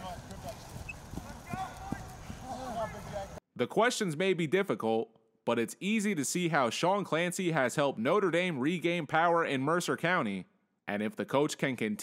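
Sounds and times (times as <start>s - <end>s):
footsteps running on grass: 0.0s - 3.4s.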